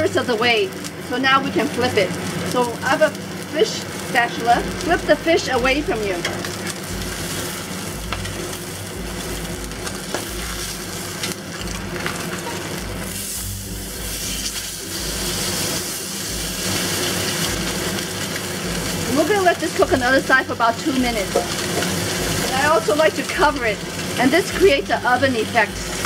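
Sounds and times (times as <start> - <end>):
fish sizzling in hot oil: 0.0 - 26.0.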